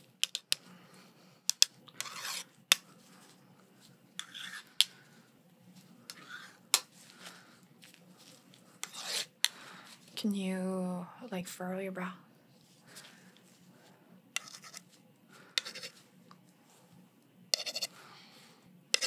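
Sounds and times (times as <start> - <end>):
pencil scratching: 2.0 - 2.5, 4.2 - 4.7, 8.8 - 9.3, 14.4 - 14.8, 15.6 - 16.0, 17.6 - 17.9.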